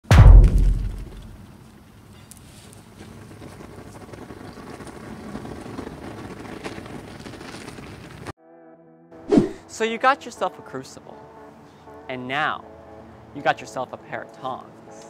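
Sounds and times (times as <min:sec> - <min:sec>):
heavy boom: 0:00.0 - 0:01.4.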